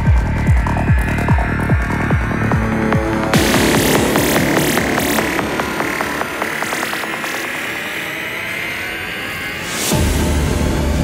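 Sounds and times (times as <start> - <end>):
deep kick and bassline: 0.0 - 8.0, 9.9 - 11.0
sustained synth tone: 0.0 - 10.0
noise wash: 0.0 - 11.0.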